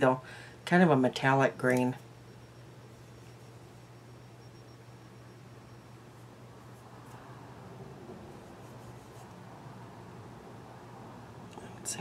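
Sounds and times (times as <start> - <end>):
low steady hum: 0.0 - 12.0
fingertip rubbing powder on skin: 8.3 - 9.4.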